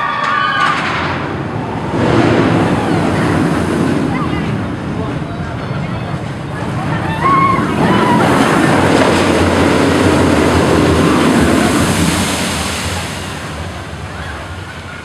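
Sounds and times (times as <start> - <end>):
loud rush of water: 0.0 - 15.0.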